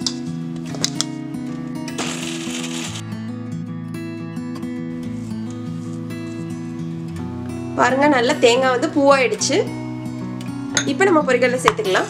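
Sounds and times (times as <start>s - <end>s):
guitar music: 0.0s - 12.0s
mixer grinder running: 2.0s - 3.0s.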